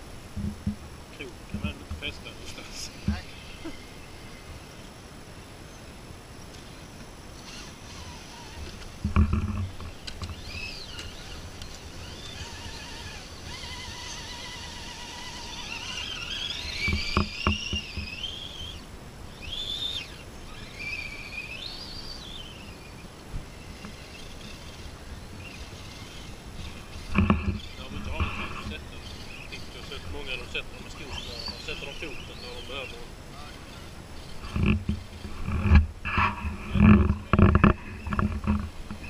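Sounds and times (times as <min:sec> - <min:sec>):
small electric motor whining: 0:01.5 - 0:05.8, 0:06.4 - 0:39.0.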